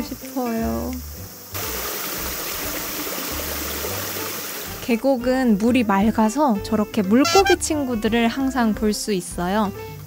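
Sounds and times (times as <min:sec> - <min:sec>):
water running over boulders: 0:00.0 - 0:04.8.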